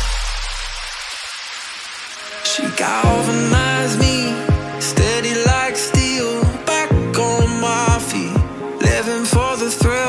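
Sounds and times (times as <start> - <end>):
electronic dance music: 2.1 - 10.0.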